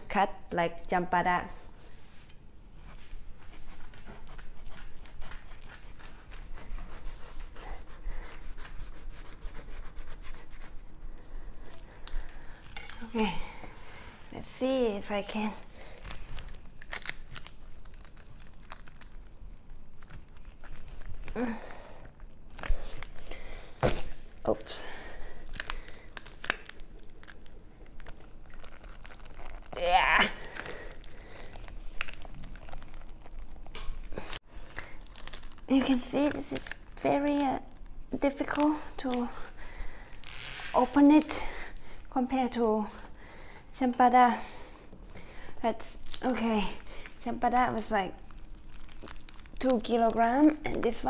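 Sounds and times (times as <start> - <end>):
fruit rind cracking and tearing: 11.8 - 14.4, 15.9 - 24.4, 25.4 - 41.4, 45.9 - 51.0.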